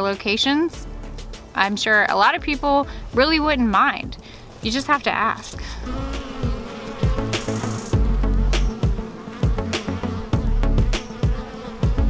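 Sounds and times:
bees buzzing: 4.4 - 12.0
low thuds: 5.6 - 12.0.

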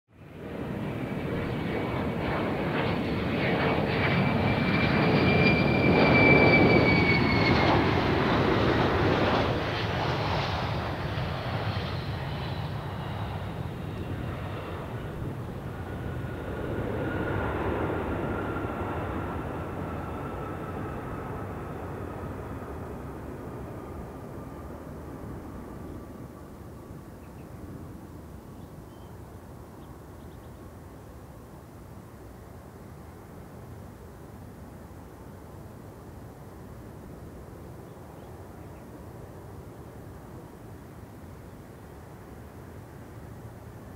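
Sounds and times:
jet engines roaring and whining: 0.2 - 28.3.

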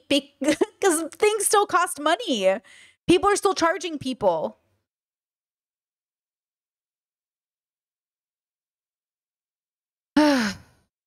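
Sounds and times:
woman sighing: 10.2 - 10.8.

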